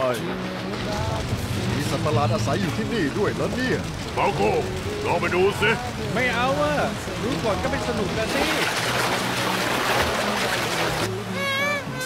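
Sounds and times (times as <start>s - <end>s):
low music tones: 0.0s - 12.0s
cartoon water splashing: 8.2s - 12.0s.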